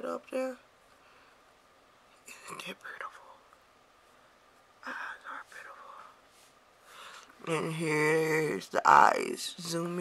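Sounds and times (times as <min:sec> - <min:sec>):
woman whispering: 0:02.2 - 0:03.5, 0:04.8 - 0:06.2.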